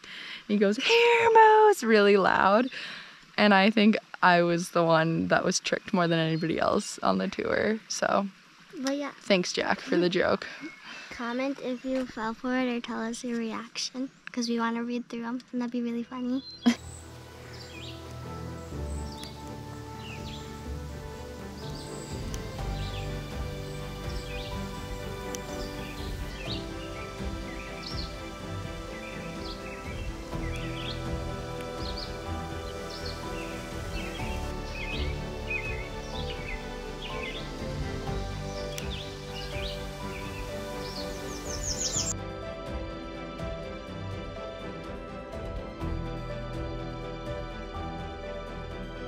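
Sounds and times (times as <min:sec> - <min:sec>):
small birds chirping: 0:05.2 - 0:42.3
soft background music: 0:15.7 - 0:49.0.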